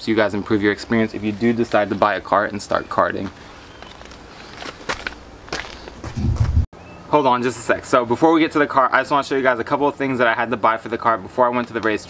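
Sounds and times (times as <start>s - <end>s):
outdoor background hum: 0.0s - 12.0s
footsteps scuffing on concrete: 1.1s - 6.7s.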